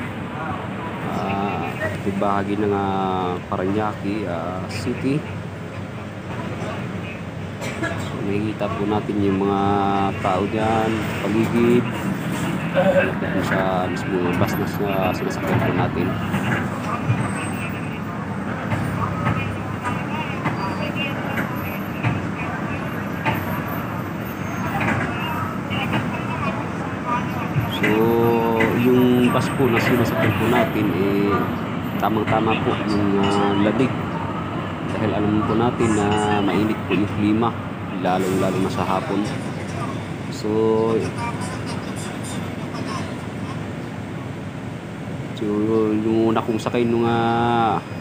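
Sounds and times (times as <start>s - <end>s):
bus engine and road noise: 0.0s - 48.0s
faint voices: 0.0s - 48.0s.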